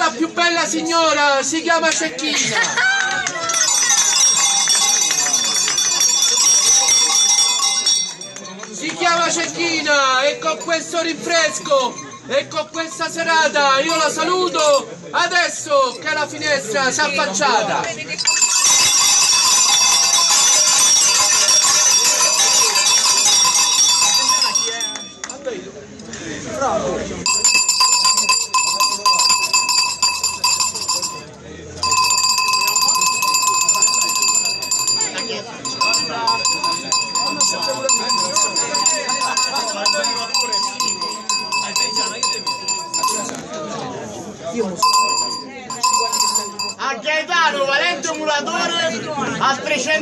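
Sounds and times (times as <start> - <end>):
crowd chatter: 0.0 - 50.0
bells jangling: 3.4 - 8.7, 18.2 - 25.4, 27.3 - 43.4, 44.8 - 46.8.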